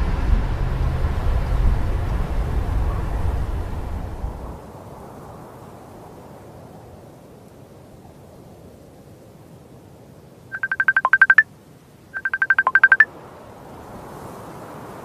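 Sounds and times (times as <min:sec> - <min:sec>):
laptop ringtone beeps: 0:10.5 - 0:11.4, 0:12.2 - 0:13.1.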